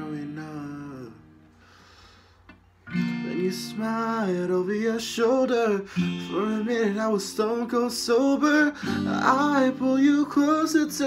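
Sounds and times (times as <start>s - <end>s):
soft intake of breath: 1.5s - 2.6s
faint click: 2.4s - 2.7s
strummed acoustic guitar chord: 2.9s - 11.0s
person singing: 3.2s - 11.0s.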